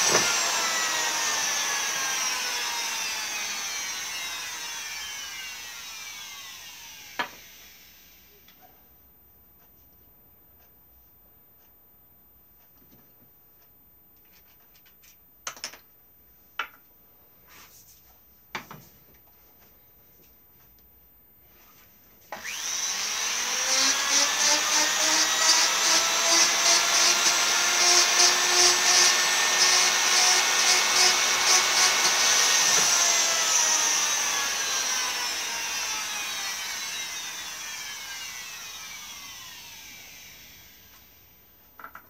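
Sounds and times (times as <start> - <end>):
rotary power tool whining: 0.0 - 8.3, 22.4 - 41.4.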